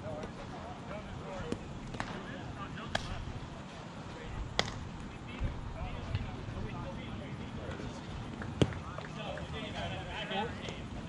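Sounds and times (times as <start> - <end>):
distant players talking: 0.0 - 11.0.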